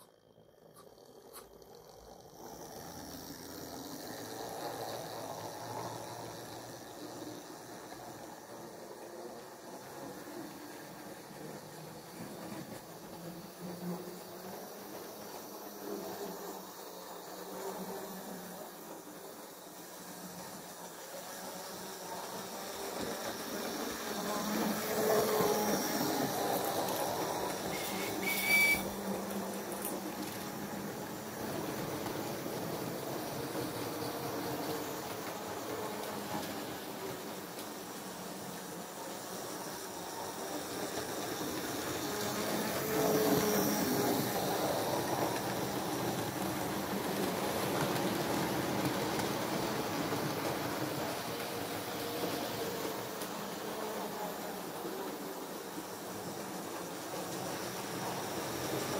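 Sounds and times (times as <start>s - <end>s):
model train running on track: 0.0s - 58.9s.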